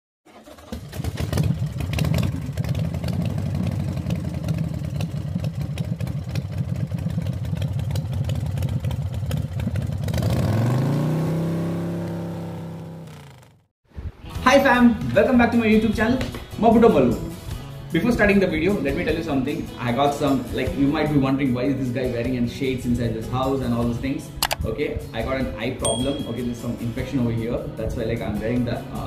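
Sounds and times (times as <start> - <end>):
vehicle engine running roughly: 0.4 - 10.3.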